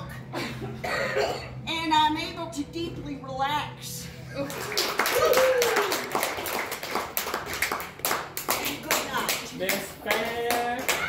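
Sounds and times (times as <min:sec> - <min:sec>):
small audience clapping: 0:04.4 - 0:11.0.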